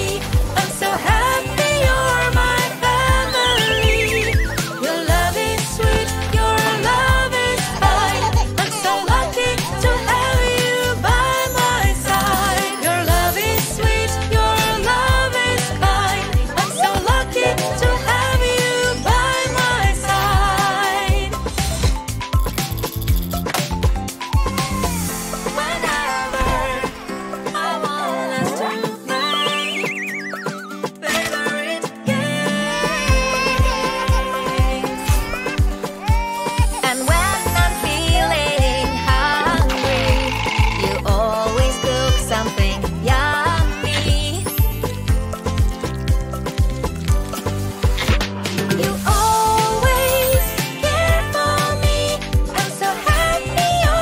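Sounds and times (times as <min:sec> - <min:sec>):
upbeat pop backing music: 0:00.0 - 0:54.0
descending warbling whistle: 0:03.2 - 0:05.0, 0:29.2 - 0:30.8
cartoon whistle sliding down: 0:29.2 - 0:30.8.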